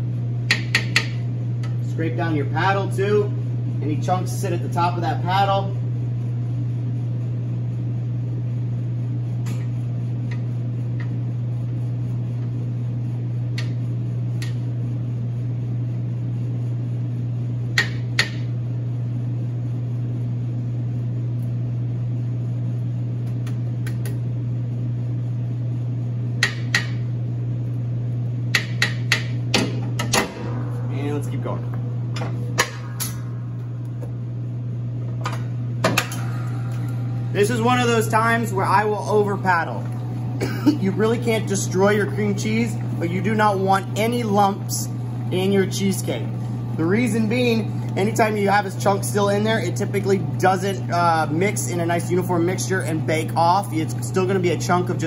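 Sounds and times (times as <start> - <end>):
steady low hum: 0.0 - 55.0.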